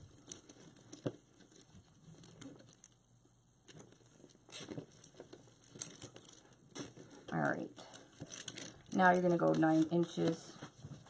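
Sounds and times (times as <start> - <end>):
mesh rustling and crinkling: 0.0 - 11.0.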